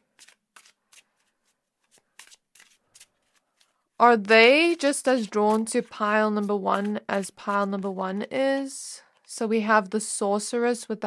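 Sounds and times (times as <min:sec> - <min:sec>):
cards shuffling: 0:00.0 - 0:07.9.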